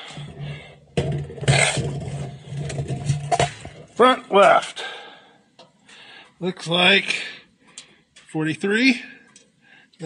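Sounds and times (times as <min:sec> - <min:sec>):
tape measure scraping: 0:01.4 - 0:02.0.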